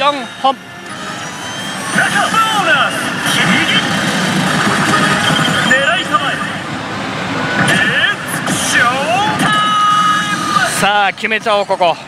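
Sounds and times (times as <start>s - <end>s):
slot machine electronic effects: 0.0s - 8.7s
gaming hall din: 0.0s - 11.4s.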